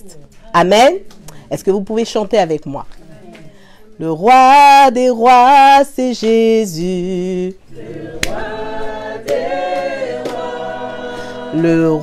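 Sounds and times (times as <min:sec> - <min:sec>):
voices singing gospel chorus: 0:03.1 - 0:12.0
hand claps: 0:08.1 - 0:08.6, 0:09.2 - 0:10.7.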